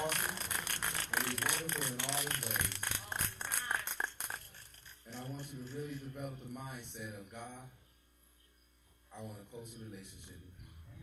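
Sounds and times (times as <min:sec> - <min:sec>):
scattered hand claps: 0:00.0 - 0:06.0.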